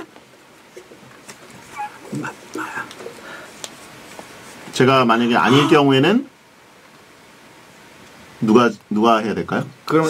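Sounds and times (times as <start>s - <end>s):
people talking: 4.7s - 6.3s, 8.4s - 10.0s.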